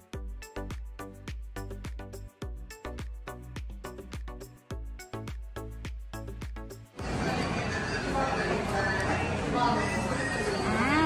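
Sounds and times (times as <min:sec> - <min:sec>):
indistinct voices: 0:07.0 - 0:11.0.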